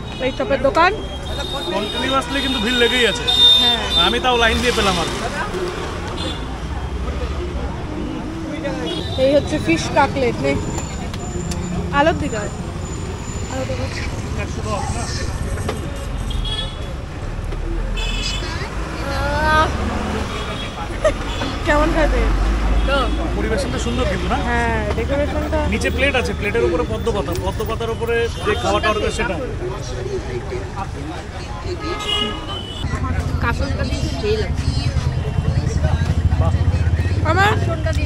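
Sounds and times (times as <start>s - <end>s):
traffic engine rumble: 0.0s - 38.0s
people talking: 0.2s - 12.6s, 13.5s - 16.3s, 18.2s - 38.0s
vehicle horn toots: 1.2s - 4.4s, 31.8s - 32.9s.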